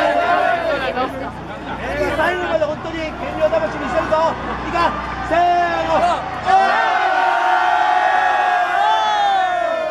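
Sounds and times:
group of people cheering: 0.0s - 0.9s, 4.4s - 9.9s.

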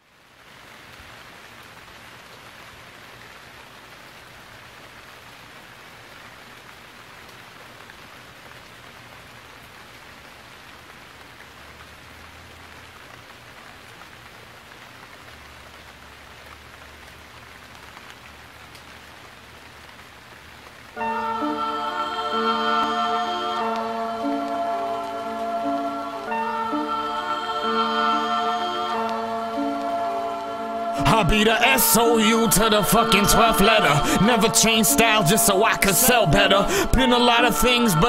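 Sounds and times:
steady rain falling: 0.0s - 38.0s.

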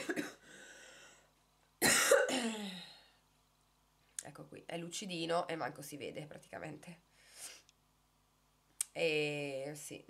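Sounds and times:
woman coughing: 0.0s - 0.4s, 1.8s - 2.9s.

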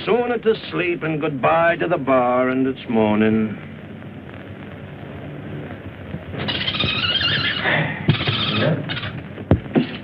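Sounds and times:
monkey screeching: 6.4s - 9.2s.

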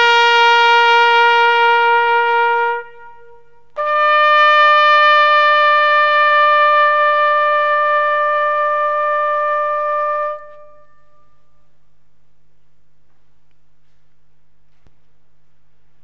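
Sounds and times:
trumpet-like brass notes: 0.0s - 11.7s.

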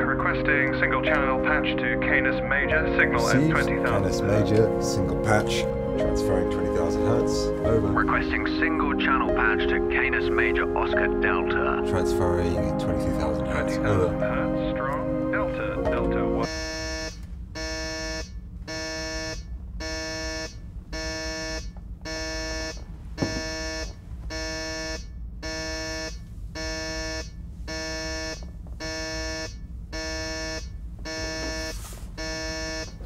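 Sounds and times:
low rumble: 2.2s - 17.6s
electronic alarm buzzer pulses: 16.4s - 33.0s.

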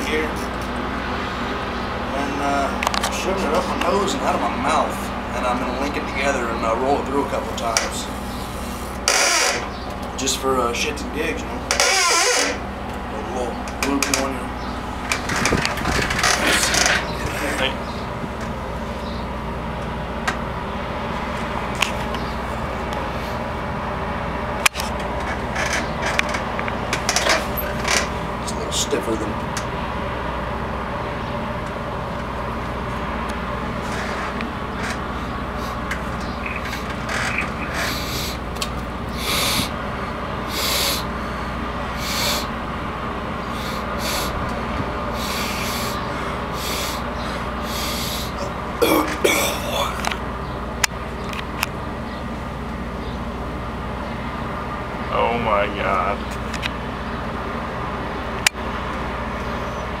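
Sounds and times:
steady hum: 0.0s - 60.0s
man sniffing and snorting: 35.5s - 36.0s, 36.6s - 38.5s, 39.1s - 42.6s, 43.4s - 50.1s
man's strained vocal sound: 45.1s - 50.1s.

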